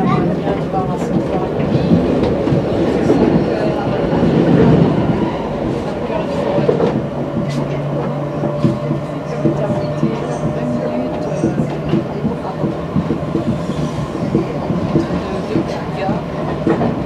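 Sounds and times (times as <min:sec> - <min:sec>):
wheel-on-rail rumble: 0:00.0 - 0:17.0.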